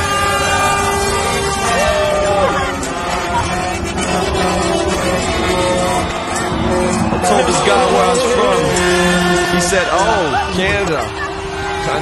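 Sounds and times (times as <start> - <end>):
highway traffic rumble: 0.0 - 12.0
truck air horns honking: 0.0 - 12.0.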